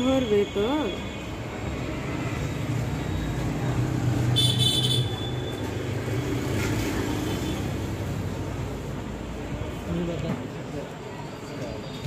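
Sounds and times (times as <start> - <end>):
rumble of passing vehicles: 0.0 - 12.0.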